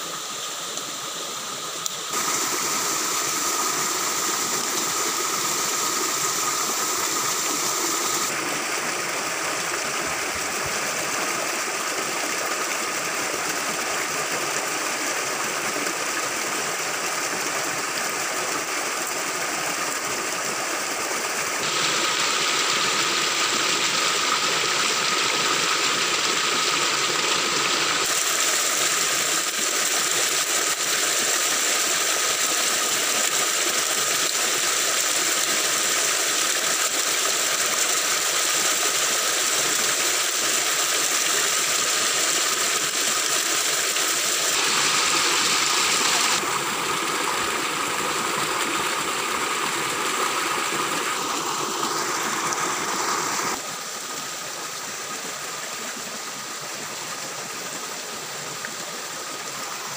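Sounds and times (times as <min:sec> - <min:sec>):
stream rushing over rocks: 0:00.0 - 0:59.9.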